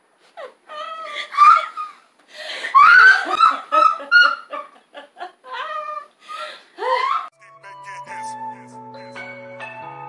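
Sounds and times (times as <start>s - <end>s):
woman laughing in squeals: 0.4s - 7.3s.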